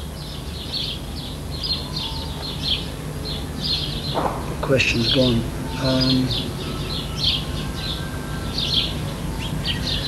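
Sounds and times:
birds twittering: 0.0s - 10.0s.

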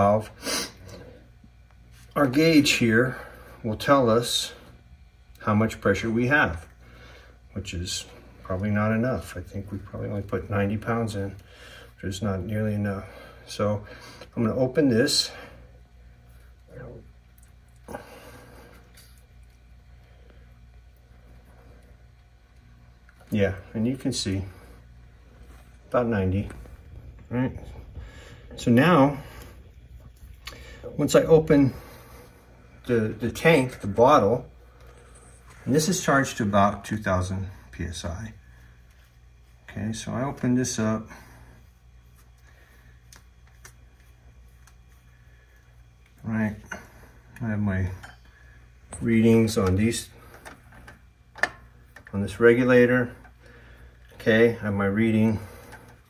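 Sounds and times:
steady low hum: 0.0s - 56.0s
faint regulator and valve clicks: 15.8s - 18.0s, 21.8s - 23.6s, 42.2s - 54.3s
man speaking: 23.3s - 24.7s, 25.8s - 29.7s, 30.5s - 32.1s, 32.8s - 34.6s, 35.6s - 38.4s, 39.7s - 41.3s, 46.2s - 48.1s, 48.9s - 50.2s, 52.1s - 53.2s, 54.2s - 55.6s.

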